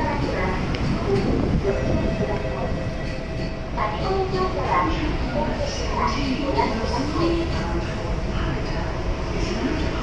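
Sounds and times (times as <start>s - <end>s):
train humming: 0.0s - 10.0s
voices on platform: 0.0s - 10.0s.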